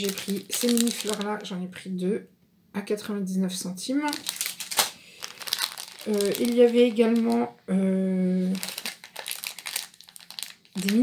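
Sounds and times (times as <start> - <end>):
plastic packaging crinkling: 0.0 - 1.6, 3.9 - 7.5, 8.4 - 11.0.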